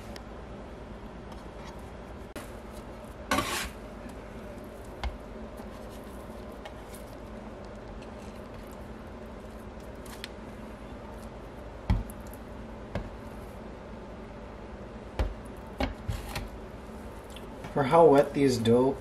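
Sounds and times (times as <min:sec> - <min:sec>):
handling sticky dough: 0:01.2 - 0:13.7
scraper scraping dough on countertop: 0:03.3 - 0:03.8.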